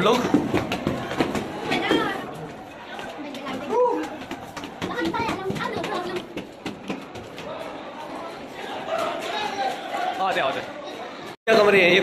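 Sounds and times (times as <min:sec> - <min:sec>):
people talking and calling out: 0:00.0 - 0:12.0
children's voices: 0:01.4 - 0:06.6.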